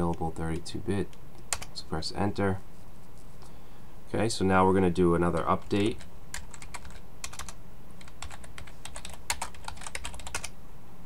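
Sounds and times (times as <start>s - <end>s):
steady low hum: 0.0s - 11.0s
typing on computer keyboard: 5.4s - 10.5s.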